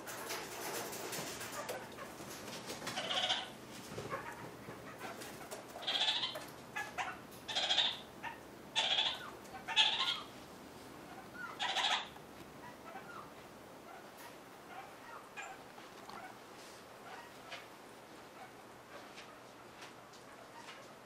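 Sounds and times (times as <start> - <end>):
parakeet bleating calls: 3.0 - 3.5, 5.8 - 10.3, 11.1 - 13.3.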